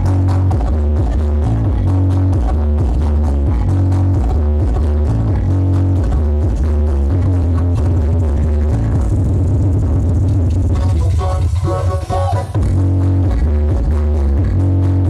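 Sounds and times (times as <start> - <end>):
electronic dance music: 0.0 - 15.0.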